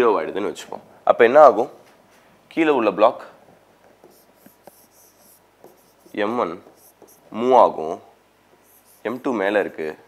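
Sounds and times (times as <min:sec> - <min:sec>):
stylus scratching on a touchscreen: 0:04.0 - 0:07.3, 0:08.6 - 0:10.0.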